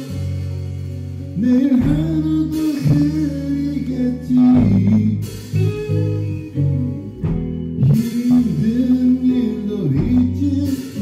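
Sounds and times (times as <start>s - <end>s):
bass and keyboards: 0.0s - 11.0s
electric guitar: 0.0s - 11.0s
person singing: 1.3s - 6.6s, 7.8s - 11.0s.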